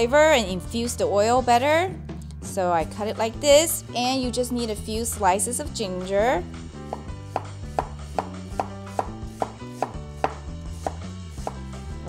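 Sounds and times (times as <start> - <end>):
cleaver knocking on cutting board: 6.9 - 11.6.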